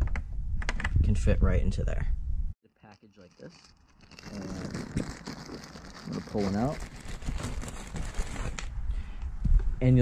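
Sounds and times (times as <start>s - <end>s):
wiring bundle rustling: 2.8s - 8.7s
plastic wrap rustling: 2.9s - 8.7s.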